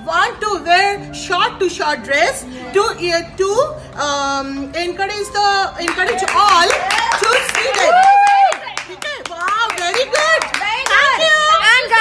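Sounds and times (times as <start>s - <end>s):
woman speaking rapidly: 8.9s - 12.0s.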